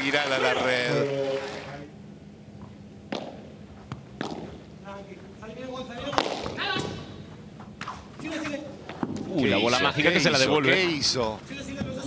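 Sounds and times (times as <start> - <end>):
padel ball knocks: 3.1 - 4.6, 6.0 - 7.1.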